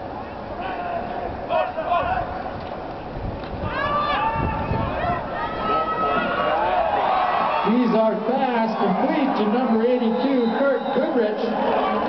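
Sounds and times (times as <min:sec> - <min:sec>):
people shouting: 0:03.6 - 0:12.0.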